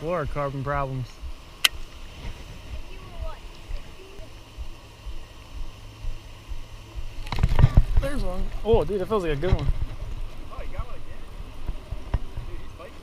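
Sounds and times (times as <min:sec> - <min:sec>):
rumbling handling noise: 0:00.0 - 0:12.8
steady low hum: 0:00.0 - 0:13.0
wind noise on microphone: 0:04.6 - 0:10.5.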